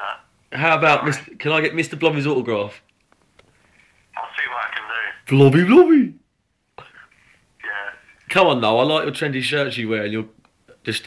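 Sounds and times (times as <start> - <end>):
voice over telephone line: 4.2 - 5.2
person speaking: 6.8 - 10.0.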